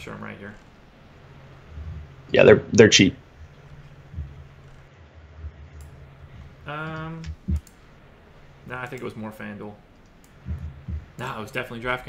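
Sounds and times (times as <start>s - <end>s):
faint soft bumps: 0.0s - 2.4s, 3.2s - 8.7s, 10.3s - 11.5s
low electrical hum: 0.0s - 12.0s.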